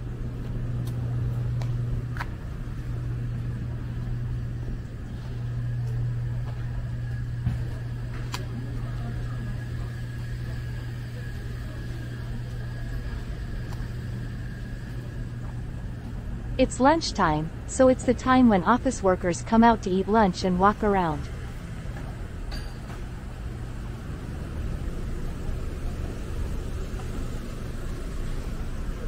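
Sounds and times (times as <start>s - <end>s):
low hum of vehicle engines: 0.0s - 29.0s.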